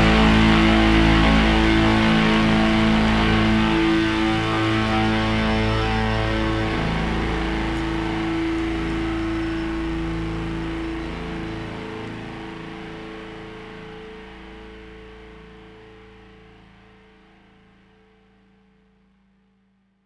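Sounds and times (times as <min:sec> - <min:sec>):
electric guitar and bass chord ringing: 0:00.0 - 0:18.0.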